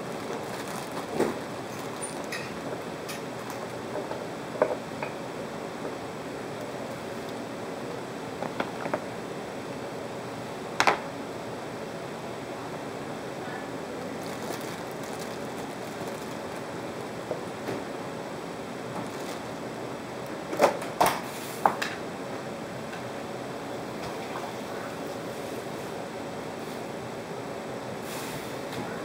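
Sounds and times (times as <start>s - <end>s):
plastic bag crinkling: 0.0s - 2.5s, 14.1s - 16.8s, 19.0s - 19.6s.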